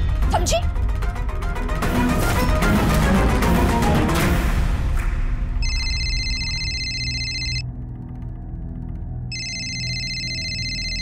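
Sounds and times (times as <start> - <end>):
phone ringing: 5.6 - 7.7, 9.3 - 11.0.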